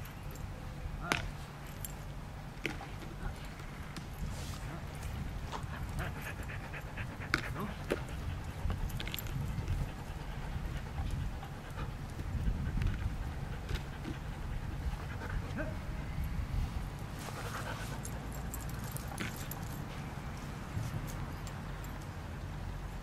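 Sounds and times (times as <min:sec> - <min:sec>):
steady low rumble: 0:00.0 - 0:21.9
dog panting: 0:04.6 - 0:15.8, 0:17.2 - 0:19.9.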